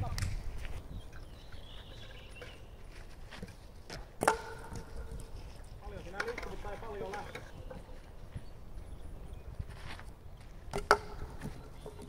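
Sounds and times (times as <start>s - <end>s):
wooden bat clacking: 3.4s - 5.4s, 6.0s - 7.9s, 10.7s - 12.0s.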